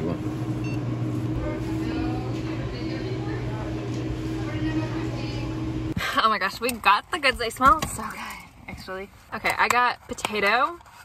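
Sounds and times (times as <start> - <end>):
low hum: 0.0 - 6.2.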